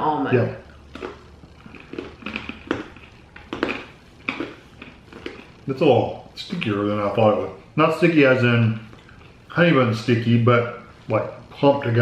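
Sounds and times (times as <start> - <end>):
crisp chewing crunches: 0.7 - 5.8.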